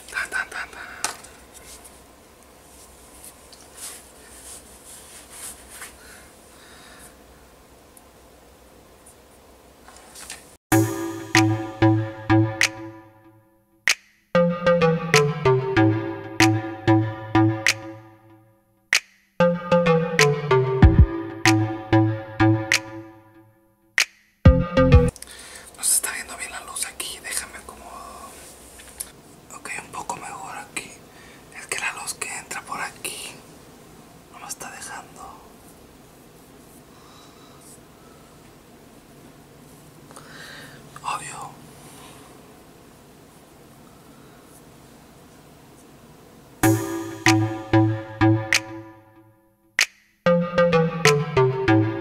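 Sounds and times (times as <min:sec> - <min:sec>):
man whispering: 0:00.0 - 0:01.1, 0:25.7 - 0:28.4, 0:29.5 - 0:33.4, 0:34.3 - 0:35.5, 0:41.0 - 0:41.6.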